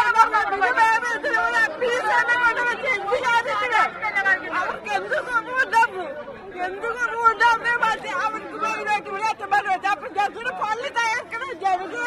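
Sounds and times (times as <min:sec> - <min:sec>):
crowd chatter: 0:00.0 - 0:12.0
woman talking into microphones: 0:06.6 - 0:12.0.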